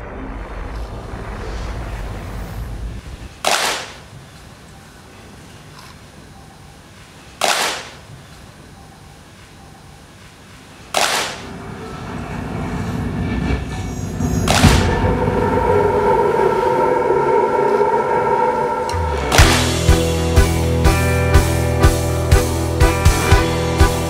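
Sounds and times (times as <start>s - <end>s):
low rumble: 0.0s - 3.4s, 11.5s - 20.8s
reverberant impact hits: 14.4s - 20.2s
sustained chord of held tones: 15.1s - 24.0s.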